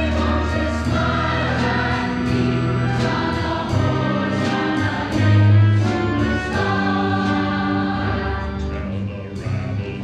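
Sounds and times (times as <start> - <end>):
choir singing with instruments: 0.0 - 10.0.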